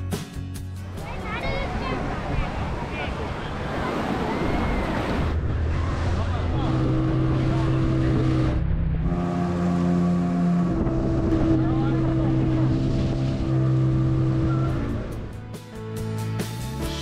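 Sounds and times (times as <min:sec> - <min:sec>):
water noise: 0:00.8 - 0:17.0
wind noise: 0:01.0 - 0:09.2, 0:10.0 - 0:15.5
outboard motor running: 0:05.0 - 0:15.4.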